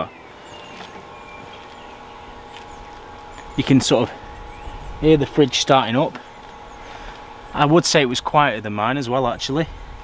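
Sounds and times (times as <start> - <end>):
fridge compressor humming: 0.0 - 10.0.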